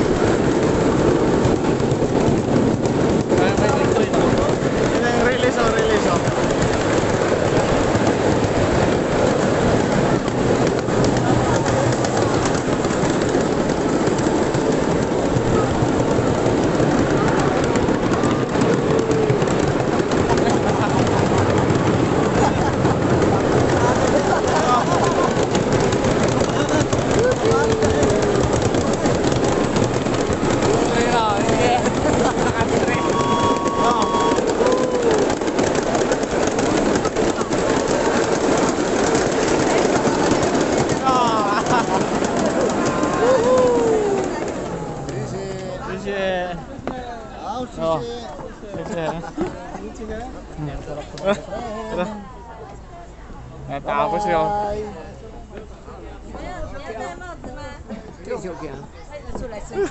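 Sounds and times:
mini-train wheels rumbling on track: 0.0s - 59.9s.

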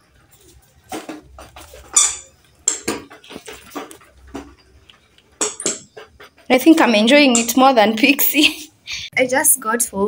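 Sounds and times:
ball and paws knocking on wood: 0.9s - 6.2s.

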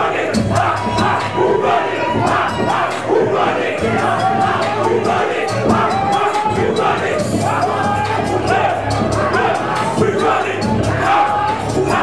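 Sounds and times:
crowd shouting in unison: 0.0s - 12.0s
live hip-hop music: 0.0s - 12.0s.

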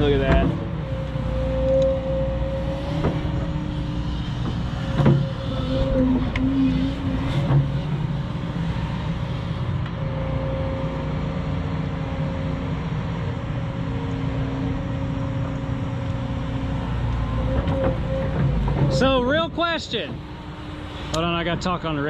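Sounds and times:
excavator diesel engine running: 0.0s - 22.0s.

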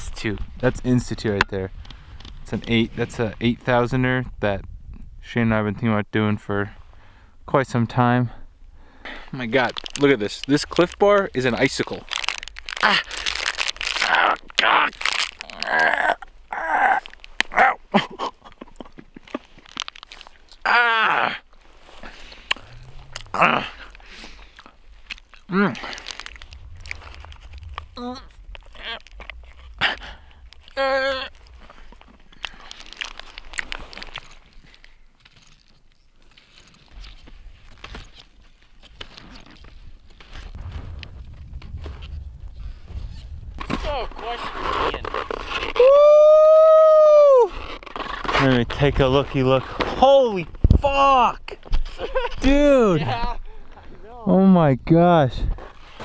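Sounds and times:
crunching bites: 9.5s - 17.8s, 18.9s - 42.2s
man groaning and grunting: 14.0s - 18.1s, 20.6s - 21.4s, 22.6s - 23.9s, 25.5s - 26.0s, 30.8s - 31.4s.

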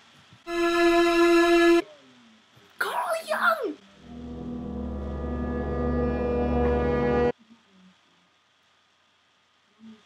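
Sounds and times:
low horn-like drone: 4.0s - 7.3s.

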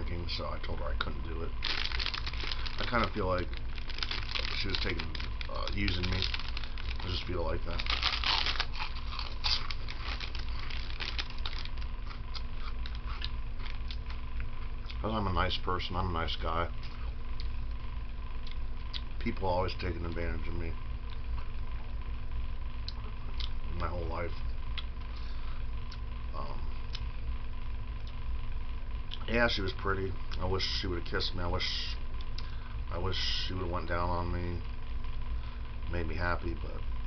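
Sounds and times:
low background rumble: 0.0s - 37.0s
steady low hum: 0.0s - 37.0s.

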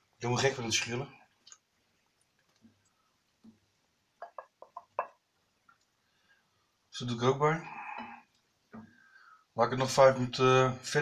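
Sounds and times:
wooden spatula clicks and knocks: 4.2s - 5.2s.

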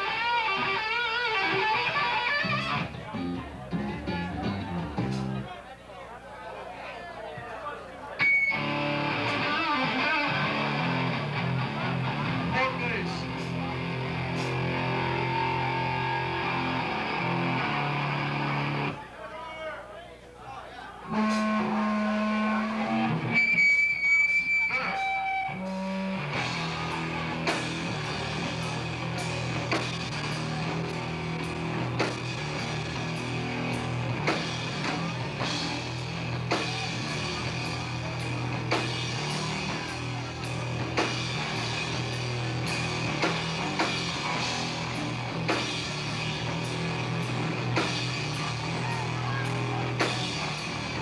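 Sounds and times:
bass guitar: 0.0s - 5.6s, 8.2s - 19.0s, 21.0s - 51.0s
distorted electric guitars: 0.0s - 5.6s, 8.2s - 19.0s, 21.0s - 51.0s
drums playing steady beat: 2.5s - 5.5s, 8.2s - 17.5s, 25.6s - 51.0s.

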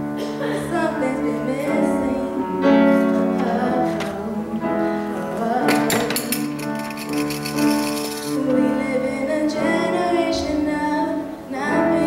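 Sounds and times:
woman singing slow song: 0.4s - 6.8s, 8.0s - 12.0s.

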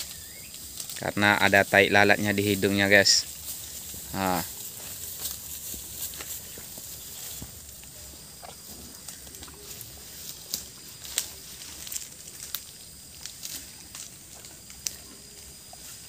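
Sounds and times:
leaves crackling and snapping: 0.0s - 6.6s, 9.0s - 15.0s.

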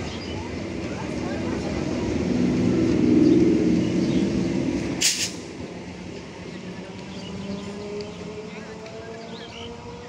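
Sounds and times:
train passing at speed: 0.0s - 10.0s
short sharp hiss: 5.0s - 5.5s.

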